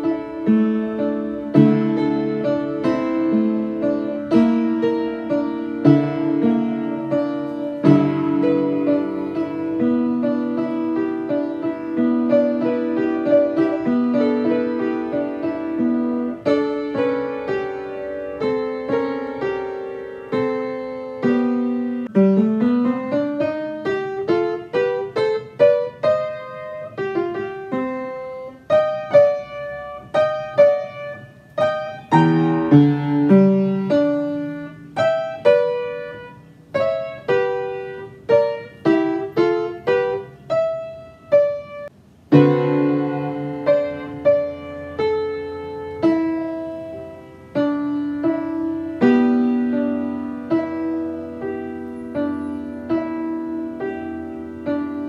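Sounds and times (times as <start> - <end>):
upright piano playing classical piece: 0.0 - 55.0.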